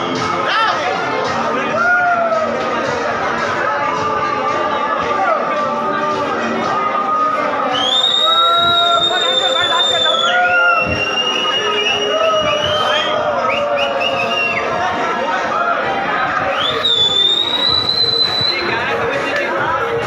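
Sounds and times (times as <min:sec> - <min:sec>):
crowd chatter: 0:00.0 - 0:20.0
party music: 0:00.0 - 0:20.0
shrill whistles: 0:07.6 - 0:14.7, 0:16.5 - 0:18.8.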